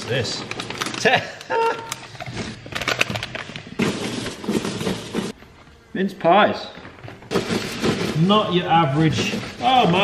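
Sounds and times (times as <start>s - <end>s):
cardboard packaging rustling: 0.0s - 5.4s, 7.2s - 10.0s.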